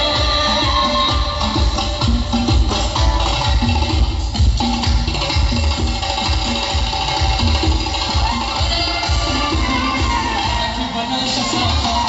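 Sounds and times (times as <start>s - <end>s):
steady drum beat: 0.0s - 10.8s
live band music: 0.0s - 12.0s.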